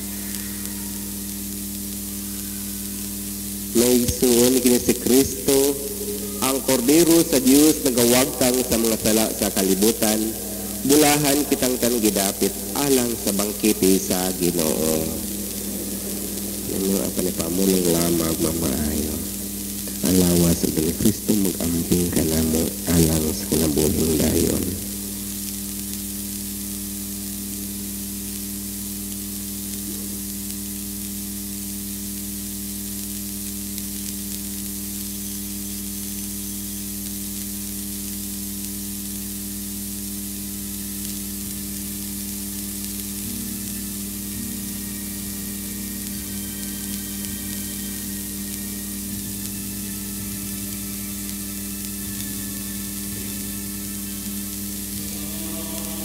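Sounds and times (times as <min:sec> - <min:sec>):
constant low hum: 0:00.0 - 0:32.0, 0:33.8 - 0:56.0
steady hiss: 0:00.0 - 0:56.0.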